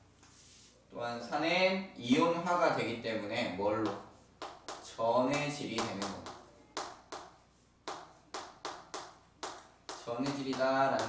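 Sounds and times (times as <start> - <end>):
chalk tapping on chalkboard: 3.8 - 11.0.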